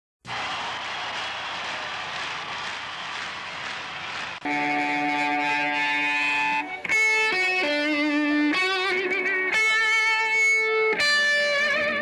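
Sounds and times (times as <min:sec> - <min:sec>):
electric guitar chord ringing: 0:04.5 - 0:12.0.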